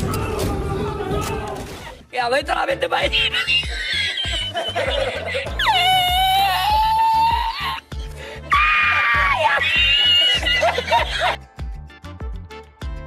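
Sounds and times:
background music with steady beat: 2.0s - 13.0s
man's high-pitched squealing laughter: 3.0s - 11.4s.

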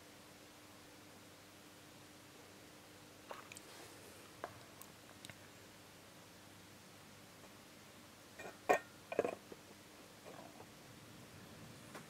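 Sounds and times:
metal housing clinking: 8.4s - 9.4s.

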